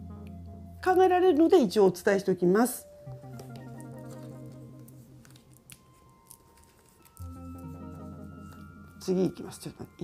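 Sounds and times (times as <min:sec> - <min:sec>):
soft background music: 0:00.0 - 0:10.0
cards being gathered by hand: 0:03.2 - 0:08.9.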